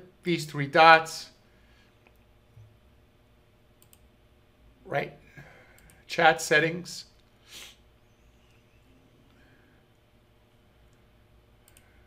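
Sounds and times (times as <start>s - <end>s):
faint computer mouse clicks: 3.8s - 4.0s, 11.6s - 11.9s.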